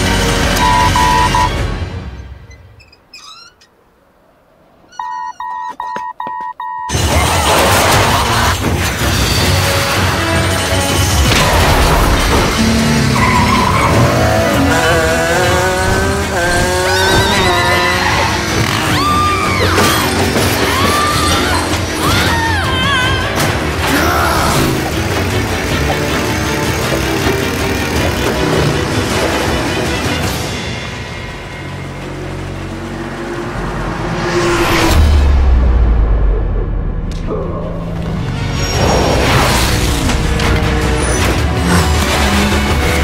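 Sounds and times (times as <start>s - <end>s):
tyres squealing: 2.2s - 4.0s, 16.2s - 25.1s.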